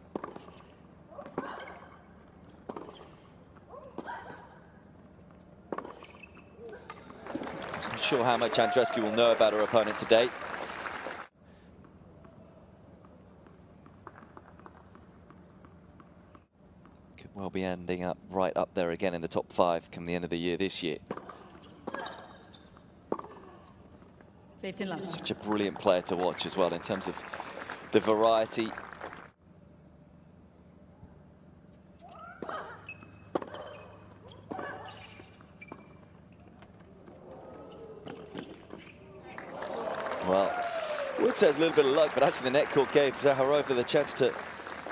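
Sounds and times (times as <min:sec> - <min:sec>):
tennis ball bouncing: 0:00.0 - 0:00.6, 0:02.5 - 0:03.2, 0:05.6 - 0:06.2, 0:21.0 - 0:22.3, 0:23.1 - 0:23.4, 0:32.4 - 0:36.1
racket striking tennis ball: 0:33.3 - 0:34.9.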